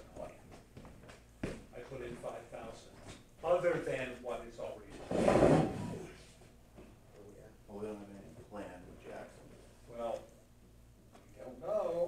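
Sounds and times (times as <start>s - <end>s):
chair scraping: 4.9s - 6.3s.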